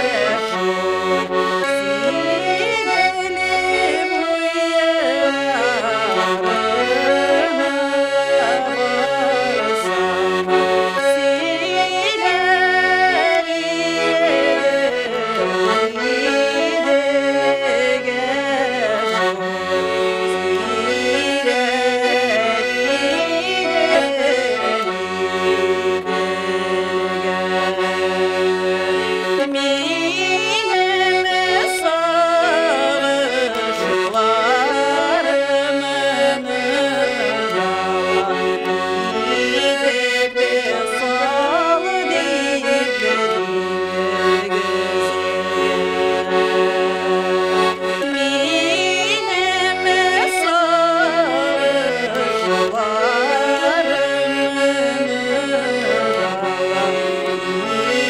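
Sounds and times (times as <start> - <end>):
woman singing: 0.0 - 25.2, 26.4 - 58.0
button accordion folk tune: 0.0 - 58.0.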